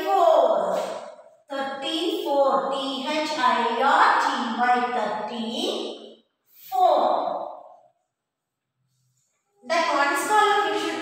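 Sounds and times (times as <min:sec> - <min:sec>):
woman speaking slowly: 0:01.5 - 0:05.8, 0:06.7 - 0:07.4.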